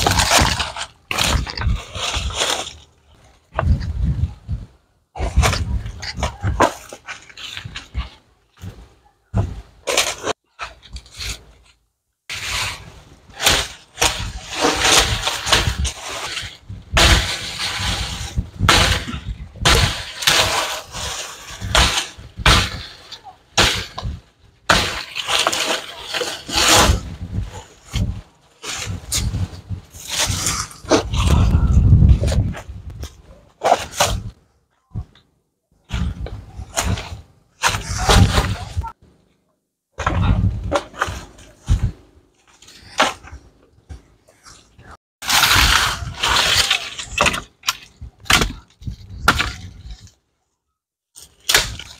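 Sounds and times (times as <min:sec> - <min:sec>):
dry leaves and twigs rustling: 0:00.0 - 0:03.9
machete chopping dry branches: 0:12.3 - 0:23.0, 0:23.6 - 0:27.1, 0:45.2 - 0:50.0, 0:51.2 - 0:51.9.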